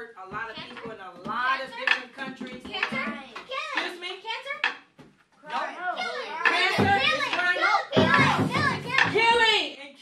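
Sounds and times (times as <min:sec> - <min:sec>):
children calling out: 0:05.6 - 0:09.6.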